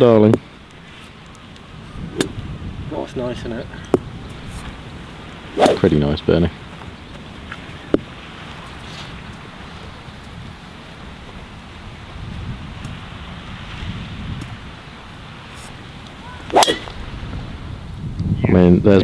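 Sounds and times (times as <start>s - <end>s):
wind hiss: 0.0s - 19.0s
golf driver striking ball: 2.1s - 2.4s, 5.6s - 6.0s, 16.5s - 17.0s.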